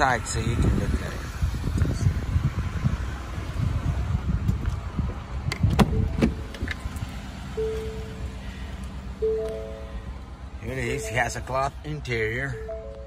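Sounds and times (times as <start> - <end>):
rumbling wind: 0.0 - 9.2
short steady beeps: 7.6 - 10.2, 12.5 - 13.0.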